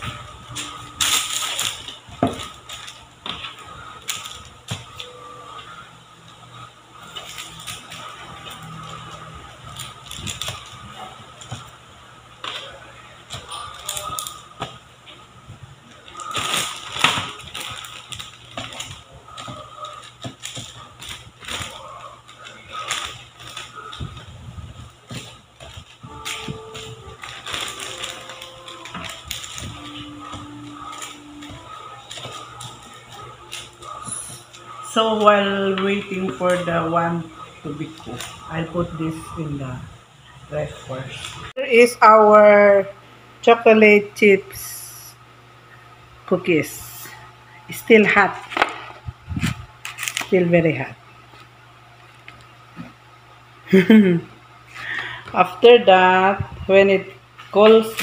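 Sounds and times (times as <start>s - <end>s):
parchment paper rustling: 0.0s - 5.9s, 7.0s - 11.8s, 12.4s - 15.2s, 15.8s - 39.5s, 48.2s - 50.5s.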